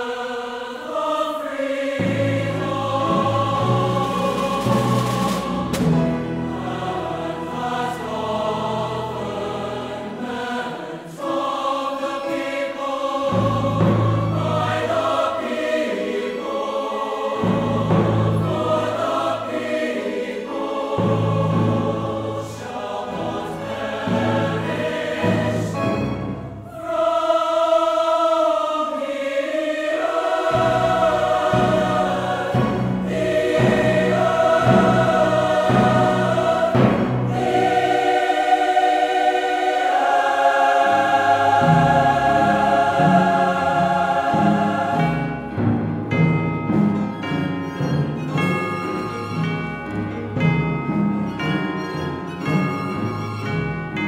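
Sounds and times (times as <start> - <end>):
choir singing chords: 0.0 - 54.0
instrumental accompaniment low notes: 30.2 - 40.2, 40.8 - 54.0.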